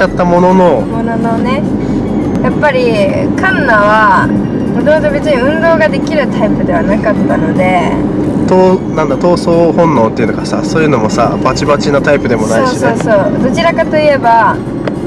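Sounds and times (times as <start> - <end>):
people talking: 0.0 - 1.7, 2.4 - 14.6
car rumble from inside cabin: 0.0 - 15.0.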